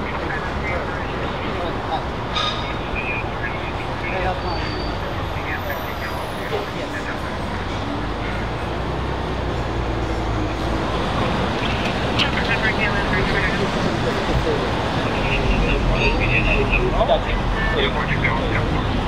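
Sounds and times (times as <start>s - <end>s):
faint voices: 0.0s - 19.0s
road traffic rumble: 0.0s - 19.0s.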